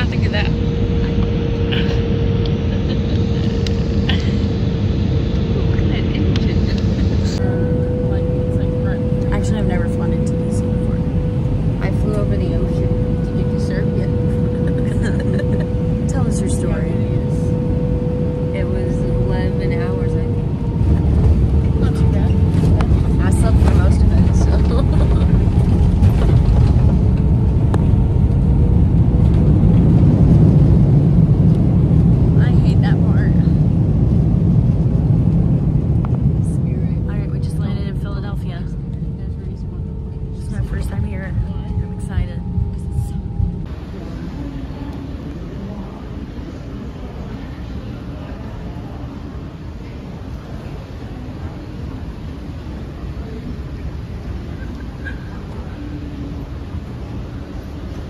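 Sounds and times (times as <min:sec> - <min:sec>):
jet engines rumbling: 0:00.0 - 0:58.0.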